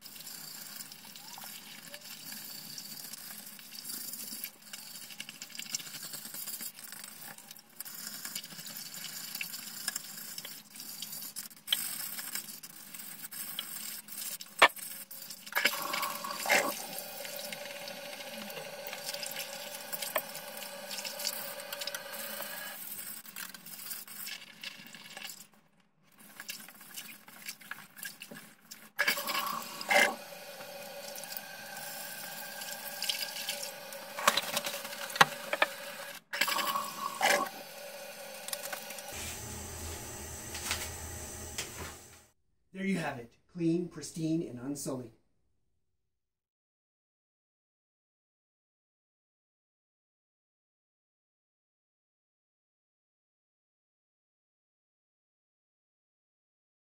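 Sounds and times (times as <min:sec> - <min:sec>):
pumice stone scrubbing toilet bowl: 0:00.0 - 0:25.5, 0:26.1 - 0:42.2
toilet flushing: 0:15.5 - 0:22.8, 0:29.0 - 0:42.3.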